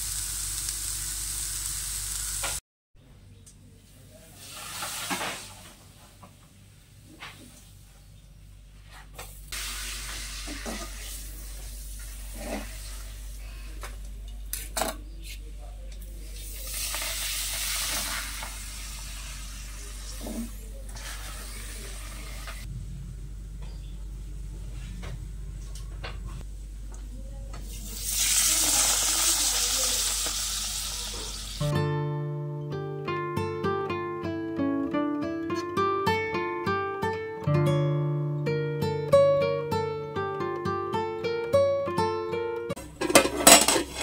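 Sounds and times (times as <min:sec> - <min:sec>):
food deep-frying in hot oil: 0:00.0 - 0:02.6, 0:04.3 - 0:05.6, 0:09.5 - 0:13.3, 0:16.3 - 0:22.7, 0:27.6 - 0:31.7.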